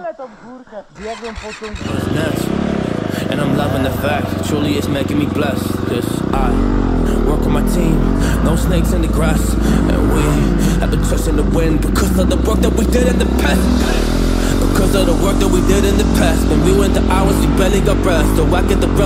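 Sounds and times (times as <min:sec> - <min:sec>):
dirt bike engine revving: 0:01.0 - 0:19.0
hip-hop track with heavy bass: 0:01.8 - 0:19.0.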